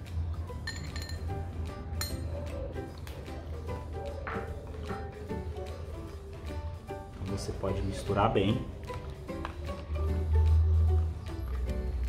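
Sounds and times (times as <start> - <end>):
background music: 0.0 - 12.0
metal spoon clinking on glass: 0.6 - 1.3, 2.0 - 2.2.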